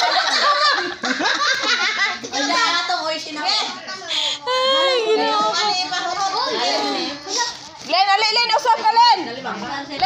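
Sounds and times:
children talking and calling out: 0:02.2 - 0:10.0.

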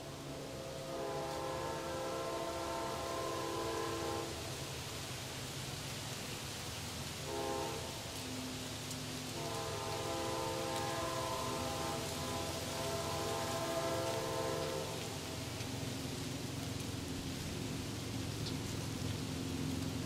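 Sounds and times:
low rumble of train: 0:00.0 - 0:20.0
train air horn blasts: 0:00.2 - 0:04.6, 0:07.2 - 0:08.4, 0:09.2 - 0:15.5.

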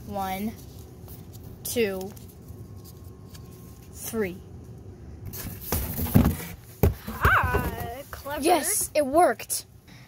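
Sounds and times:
rustling handling noise: 0:00.2 - 0:04.0
knocks of objects being moved: 0:05.2 - 0:08.3.

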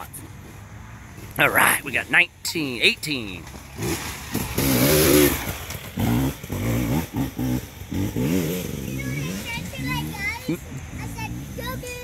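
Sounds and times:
dirt bike engine revving: 0:01.2 - 0:12.0.

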